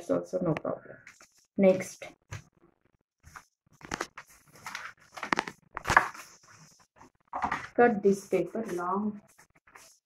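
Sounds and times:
crepe paper rustling: 3.3 - 7.1, 8.6 - 10.0.

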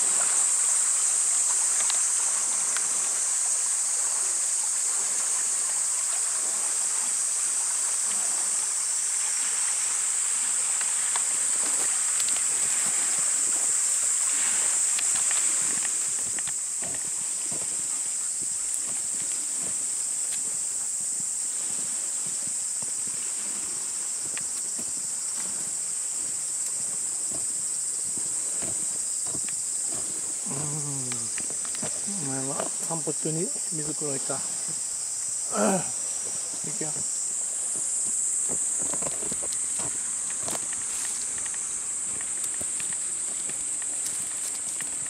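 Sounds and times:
cicadas chorus: 0.0 - 45.0
stream rushing: 0.0 - 45.0
person speaking: 30.4 - 31.4, 32.0 - 34.5, 36.6 - 37.1.

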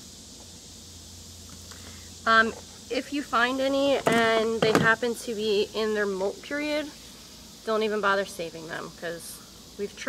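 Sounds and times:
constant low hum: 0.0 - 10.0
high hiss: 0.0 - 10.0
faint ticks: 1.5 - 1.9.

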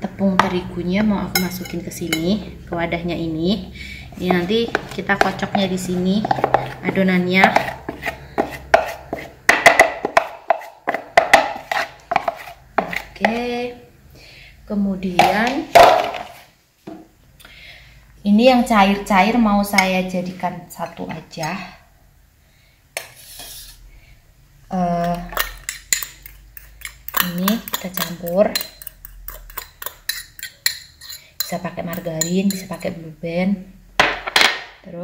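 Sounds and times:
metal spoon clinking on glass bowl: 1.3 - 2.3, 25.3 - 32.9.

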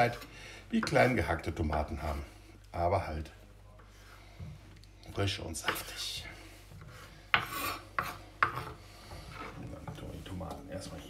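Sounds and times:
knife scraping across board: 6.8 - 9.6.

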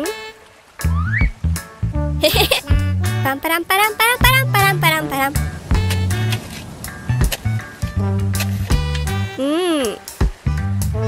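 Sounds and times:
cheerful cartoon music: 0.0 - 11.0
high-pitched cartoon vocal sounds: 9.4 - 10.1.

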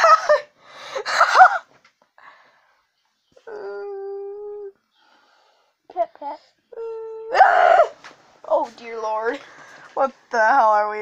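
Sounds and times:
high-pitched whimpering cries: 3.4 - 4.8, 6.7 - 8.0.

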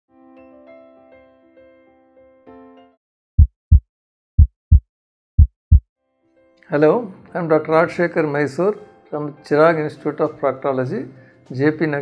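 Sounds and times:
heartbeat thumps: 3.4 - 3.8, 4.4 - 4.8, 5.4 - 5.8.

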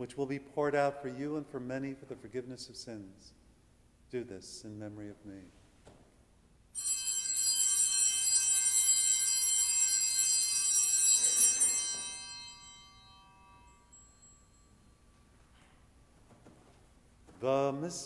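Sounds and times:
altar bells jingling: 6.8 - 16.0.

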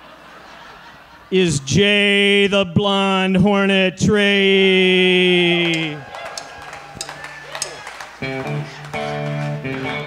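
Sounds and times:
room noise: 5.6 - 8.9
electric guitar ringing chords: 7.0 - 10.0.

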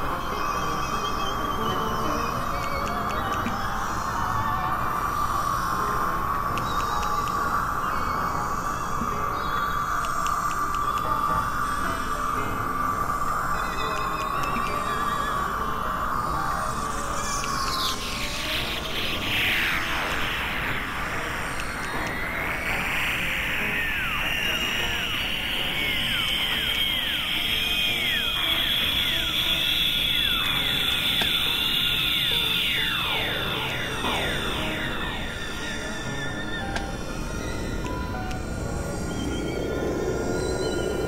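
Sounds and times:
rising and falling chirps: 0.0 - 41.0
falling pitch sweeps: 15.3 - 41.0
high held tone: 23.2 - 37.1.

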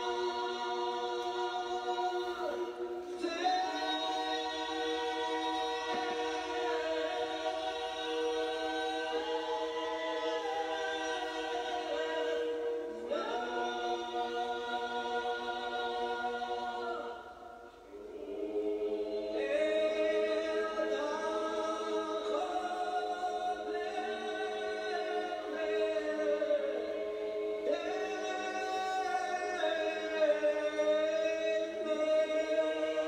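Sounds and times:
choir singing a cappella: 0.0 - 33.0.

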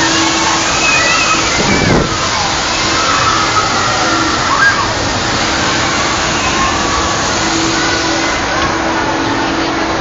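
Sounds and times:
faint voices: 0.0 - 10.0
wind rushing over microphone: 1.4 - 2.8.

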